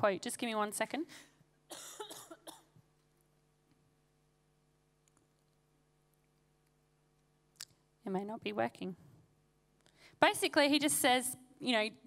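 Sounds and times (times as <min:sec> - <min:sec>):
faint steady hum: 0:00.0 - 0:12.0
cough into microphone: 0:01.7 - 0:02.9.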